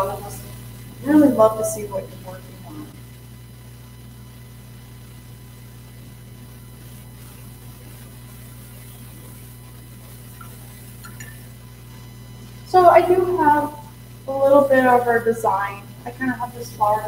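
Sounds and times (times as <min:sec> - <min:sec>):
faint thin steady tones: 0:00.0 - 0:17.0
low electrical hum: 0:00.0 - 0:17.0.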